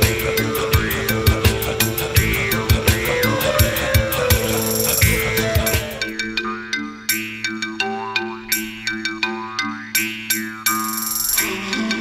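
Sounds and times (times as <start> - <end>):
bright ringing notes over drone: 0.0 - 12.0.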